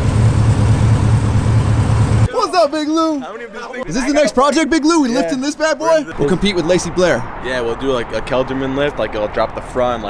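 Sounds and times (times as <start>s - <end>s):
pickup truck idling: 0.0s - 2.3s.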